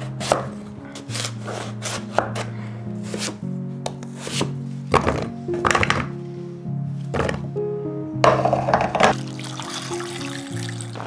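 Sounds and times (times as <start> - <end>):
soft music: 0.0 - 11.0
knife cutting through squash: 0.2 - 3.4.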